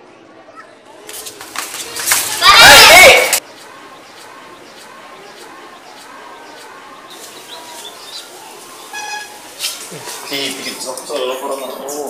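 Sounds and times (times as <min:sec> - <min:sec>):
children shouting and playing: 0:00.0 - 0:12.0.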